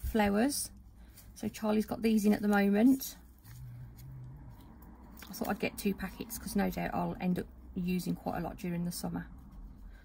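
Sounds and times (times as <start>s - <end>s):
low hum: 3.1s - 7.8s.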